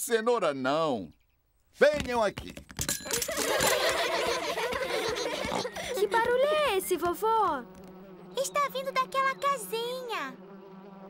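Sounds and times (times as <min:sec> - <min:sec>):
swarm of bees buzzing: 0:03.8 - 0:11.0.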